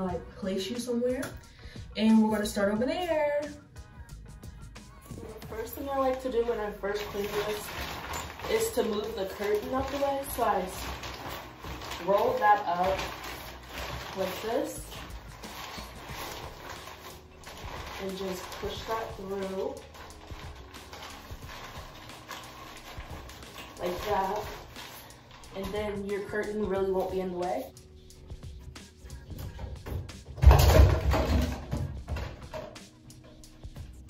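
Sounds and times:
background music: 0:00.0 - 0:34.0
shower curtain fabric rustling: 0:04.9 - 0:34.0
curtain rod scraping and creaking: 0:05.0 - 0:34.0.

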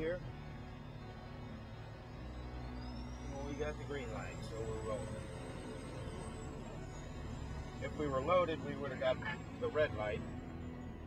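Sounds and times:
truck diesel engine rumbling: 0:00.0 - 0:11.0.

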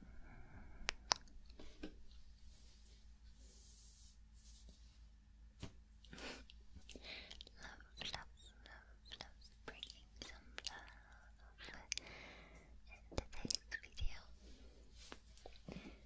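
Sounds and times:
sharp mouth clicks: 0:00.9 - 0:01.3, 0:06.2 - 0:12.1
person whispering close to microphone: 0:06.8 - 0:12.1, 0:12.8 - 0:14.4.

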